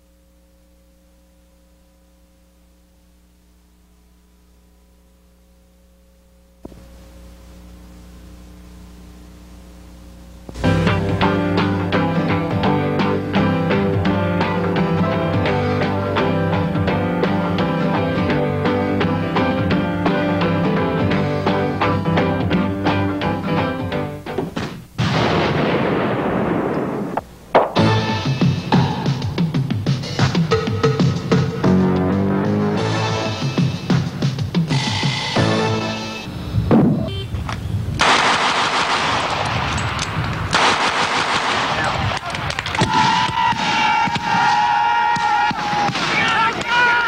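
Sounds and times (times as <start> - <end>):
long steady tone: 0.0 - 12.3, 35.8 - 37.9
theme music with steady beat: 10.5 - 24.3, 27.6 - 36.3
loud explosion: 25.0 - 28.0, 38.0 - 39.8
rapid gunfire: 38.0 - 39.8, 40.5 - 43.8.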